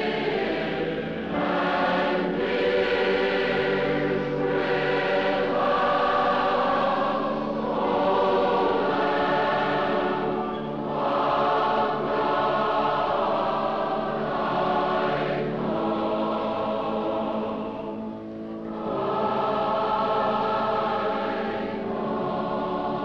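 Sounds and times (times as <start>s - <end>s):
choir singing a hymn: 0.0s - 23.0s.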